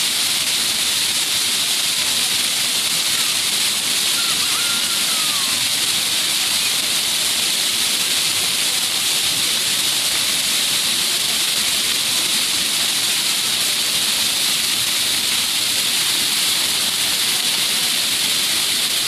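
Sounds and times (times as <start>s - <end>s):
fountain water splashing: 0.0s - 19.0s.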